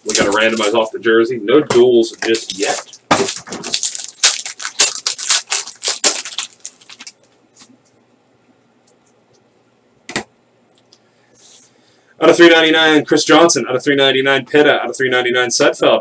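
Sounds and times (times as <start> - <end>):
plastic wrapper crinkling and tearing: 2.2 - 7.7.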